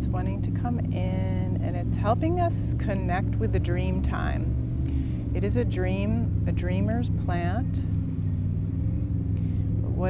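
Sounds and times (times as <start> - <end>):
motorboat engines rumbling: 0.0 - 10.0.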